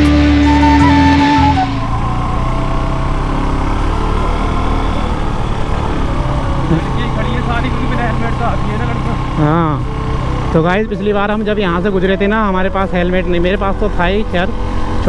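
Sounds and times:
guitar background music: 0:00.0 - 0:15.0
motorcycle engine cruising: 0:00.0 - 0:15.0
wind and road noise: 0:00.0 - 0:15.0.

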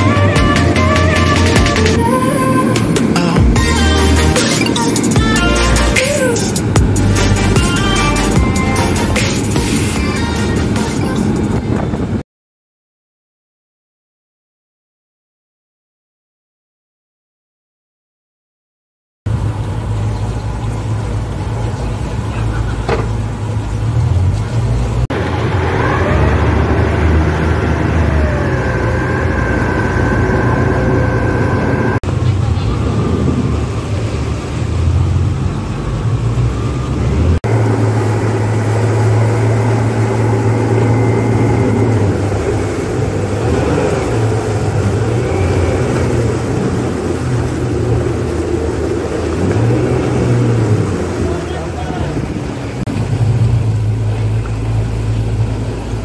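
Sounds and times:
outboard motors humming: 0:00.0 - 0:12.2, 0:19.3 - 0:56.0.

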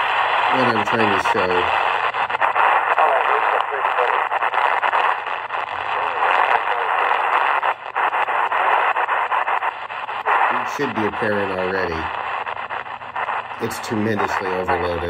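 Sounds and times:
radio static rushing with crackles: 0:00.0 - 0:15.0.

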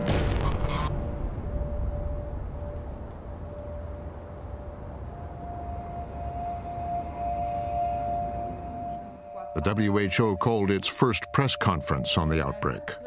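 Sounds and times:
higher held tone: 0:00.3 - 0:13.0
held drone tone: 0:00.8 - 0:13.0.

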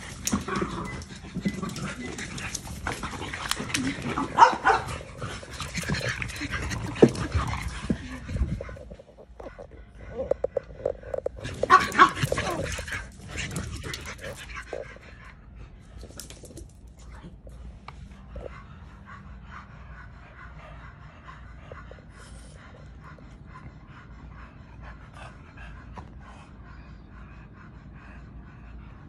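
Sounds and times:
dogs growling and vocalizing: 0:00.0 - 0:29.0.

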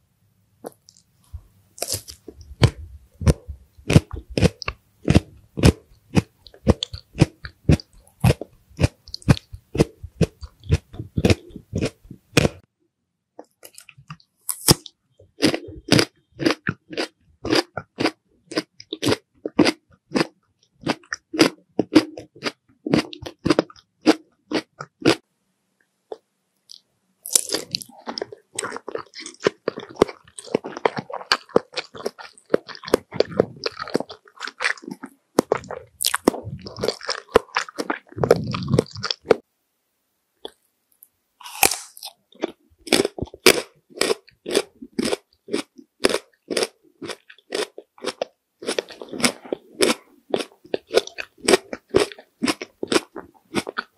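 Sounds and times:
chewing crunchy snack: 0:01.8 - 0:12.6, 0:13.4 - 0:25.2, 0:26.7 - 0:39.4, 0:41.4 - 0:53.9.

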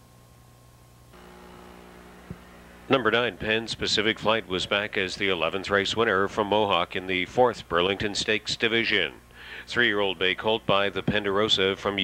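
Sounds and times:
electrical mains hum: 0:00.0 - 0:12.0
steady hiss: 0:01.1 - 0:12.0.

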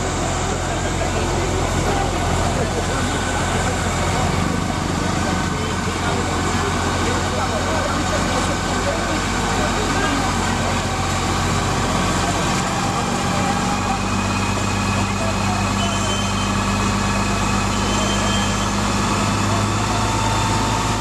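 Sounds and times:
diesel engine running: 0:00.0 - 0:21.0.

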